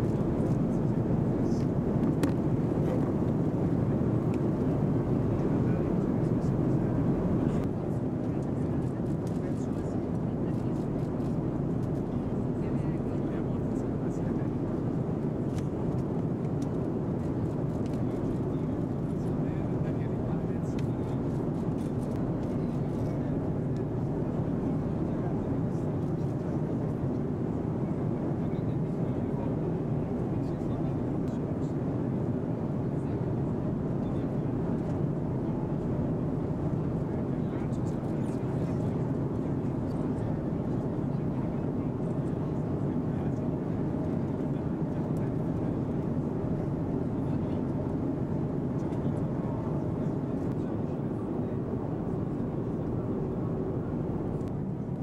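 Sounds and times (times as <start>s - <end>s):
indistinct chatter of people: 0.0s - 54.6s
airliner engine and air hum: 0.0s - 55.0s.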